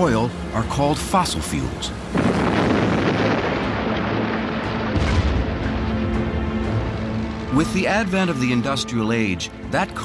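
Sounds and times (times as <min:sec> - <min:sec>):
background music: 0:00.0 - 0:10.0
rumble of rock blasting: 0:02.1 - 0:08.6.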